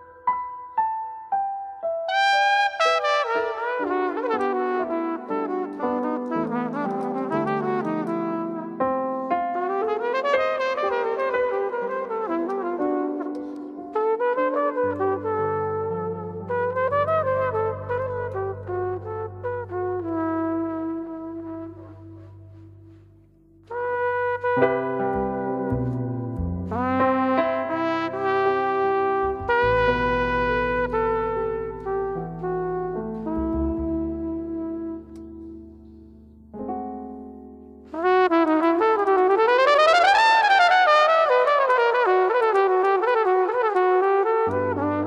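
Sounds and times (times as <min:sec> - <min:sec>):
jazz trio playing ballad: 0:02.6 - 0:37.1, 0:37.9 - 0:39.4, 0:41.5 - 0:45.0
descending bass line: 0:25.0 - 0:28.0, 0:29.2 - 0:35.1.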